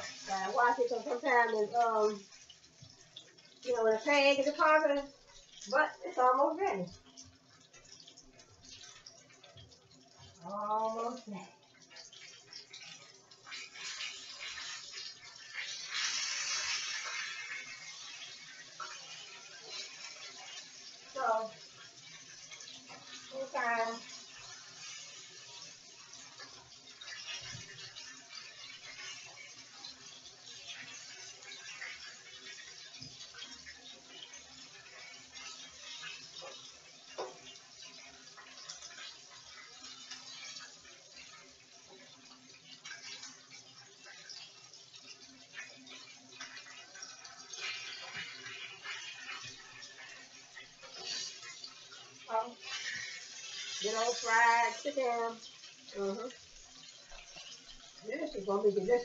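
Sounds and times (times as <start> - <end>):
chicken sizzling in oil: 0.0 - 59.0
crackles and pops of frying: 0.0 - 59.0.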